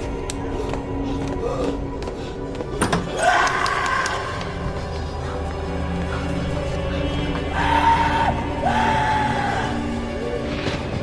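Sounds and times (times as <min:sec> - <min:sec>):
tense film score music: 0:00.0 - 0:11.0.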